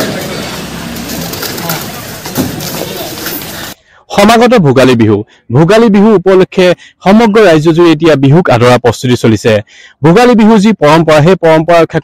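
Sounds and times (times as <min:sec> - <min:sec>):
bird calling: 0:00.0 - 0:03.8
outdoor background noise: 0:00.0 - 0:05.5.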